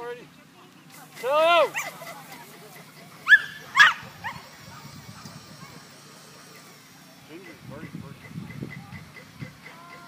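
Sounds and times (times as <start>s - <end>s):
dog yipping: 3.2s - 4.5s.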